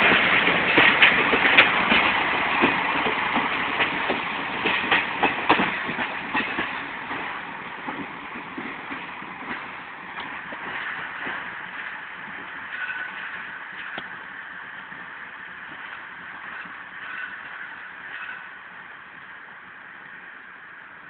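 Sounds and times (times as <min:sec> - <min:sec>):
train wheels clacking on rail joints: 0:00.0 - 0:14.2, 0:14.9 - 0:18.6.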